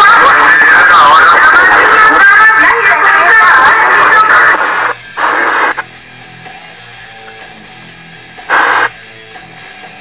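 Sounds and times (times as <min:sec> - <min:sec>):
radio static bursts: 0:00.0 - 0:05.8, 0:08.5 - 0:08.9.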